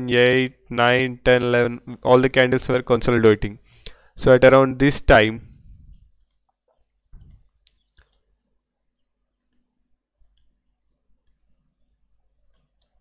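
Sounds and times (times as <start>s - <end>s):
computer mouse clicks: 7.2s - 8.6s, 9.4s - 10.6s, 11.2s - 11.6s, 12.4s - 13.0s.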